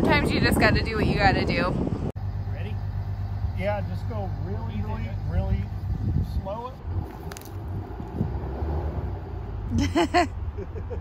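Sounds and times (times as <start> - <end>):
truck engine at low revs: 1.7 - 11.0.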